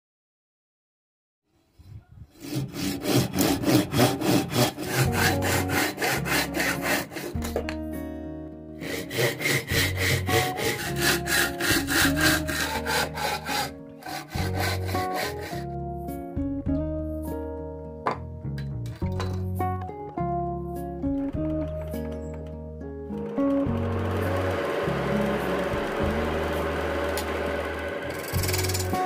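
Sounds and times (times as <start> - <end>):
hand saw cutting bamboo: 2.4 - 7.7, 8.8 - 15.7, 24.2 - 29.0
soft guitar music: 7.3 - 8.8, 13.7 - 29.0.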